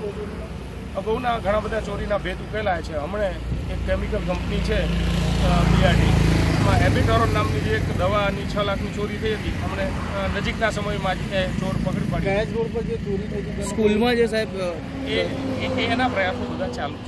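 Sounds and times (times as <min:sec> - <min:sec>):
man speaking: 0:00.0 - 0:17.0.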